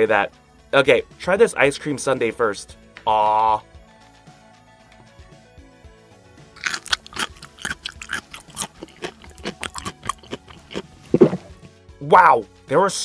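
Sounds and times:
soft background music: 0:00.0 - 0:13.0
crunchy chewing: 0:06.6 - 0:11.6.

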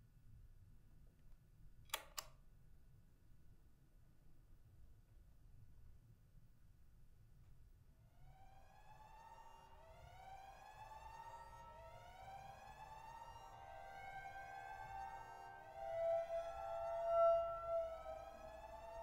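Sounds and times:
eerie rising horror tones: 0:08.3 - 0:19.0.

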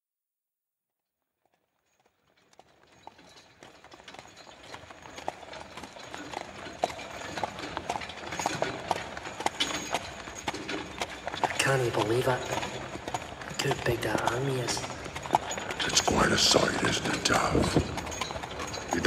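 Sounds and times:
horse hooves clip-clopping on street: 0:01.4 - 0:19.0.

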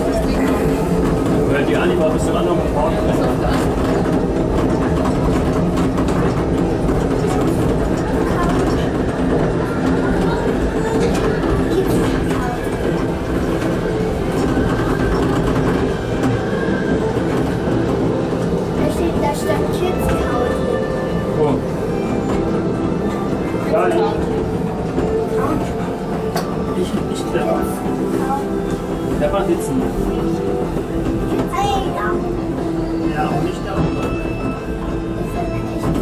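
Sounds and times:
indistinct voices: 0:00.0 - 0:36.0
monorail train running: 0:00.0 - 0:36.0
music: 0:00.0 - 0:36.0.

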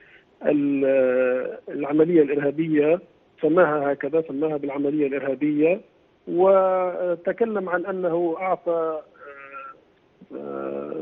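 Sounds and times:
man's hesitation vowel: 0:09.0 - 0:11.0
faint vocal sound: 0:09.1 - 0:11.0.

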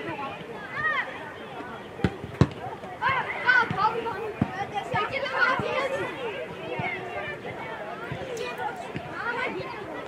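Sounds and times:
children shouting: 0:03.0 - 0:10.0.

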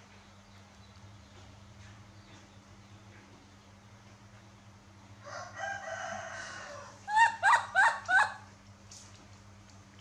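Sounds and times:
rooster crowing: 0:05.2 - 0:08.4.

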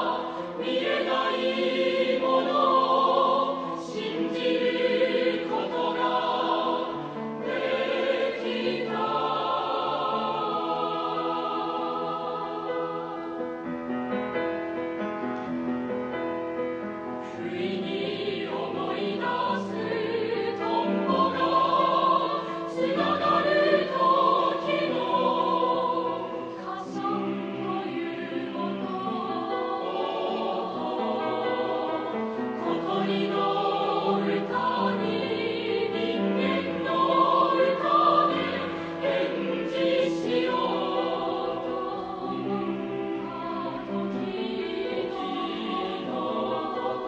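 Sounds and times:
mixed choir singing: 0:00.0 - 0:13.8, 0:17.2 - 0:47.0.

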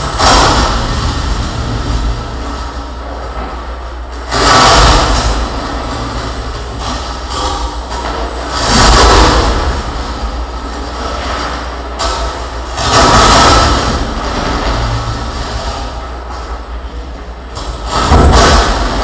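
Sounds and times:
distorted harsh noise: 0:00.0 - 0:19.0.

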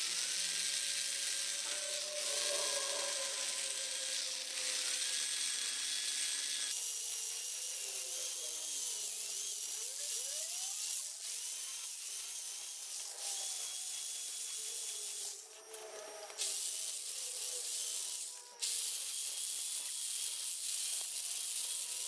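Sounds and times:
drill bit grinding stone: 0:00.0 - 0:22.0
power drill motor whining: 0:00.0 - 0:22.0.

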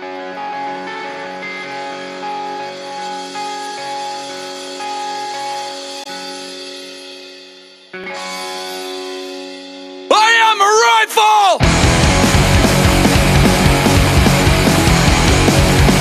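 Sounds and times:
punk rock guitar picking: 0:11.6 - 0:16.0.

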